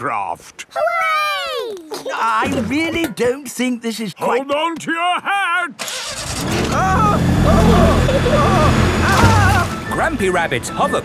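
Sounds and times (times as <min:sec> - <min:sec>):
excited cries: 0:05.8 - 0:10.0
cartoon hovercraft engine drone: 0:05.9 - 0:11.0.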